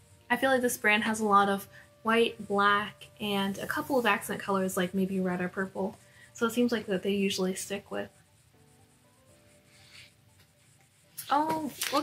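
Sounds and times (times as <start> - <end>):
faint background music: 0.0 - 12.0
paper pages rustling: 11.2 - 12.0.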